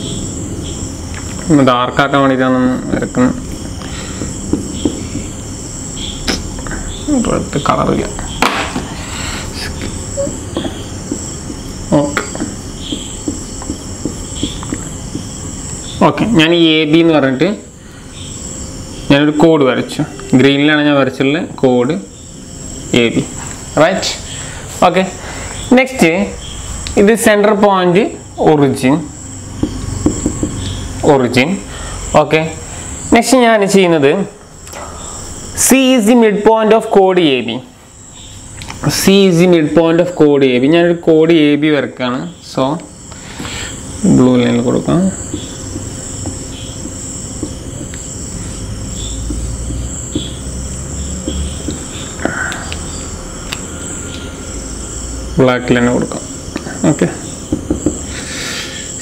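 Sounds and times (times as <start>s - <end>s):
high-pitched chirring: 0.0s - 40.8s, 42.1s - 59.0s
marker on a whiteboard: 2.9s - 7.1s, 7.7s - 17.1s, 29.4s - 32.5s, 42.8s - 53.0s, 56.0s - 58.3s.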